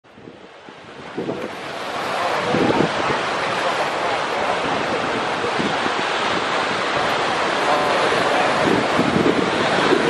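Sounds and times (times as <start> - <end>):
ocean surf breaking: 0.1 - 10.0
wind gusting on microphone: 0.1 - 10.0.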